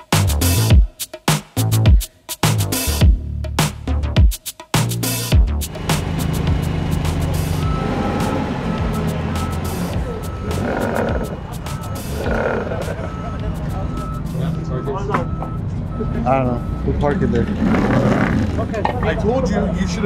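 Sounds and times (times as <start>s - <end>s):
background music: 0.0s - 17.0s
forklift engine under load: 5.7s - 14.2s, 15.1s - 18.8s
warning beeper beeping: 7.5s - 17.5s.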